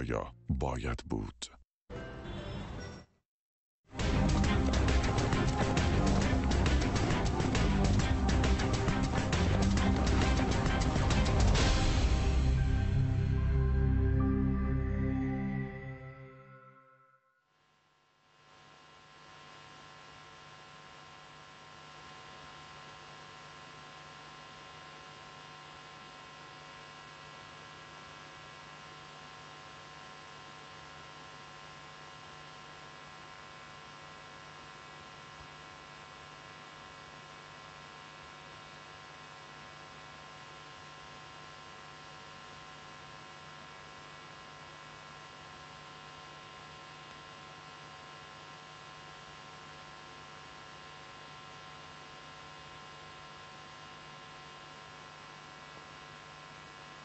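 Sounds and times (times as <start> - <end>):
electrical hum: 4.0 - 16.7.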